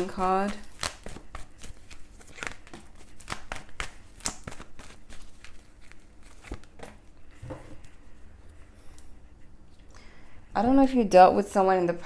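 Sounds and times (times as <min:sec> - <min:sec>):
cards being shuffled by hand: 0:00.0 - 0:08.0.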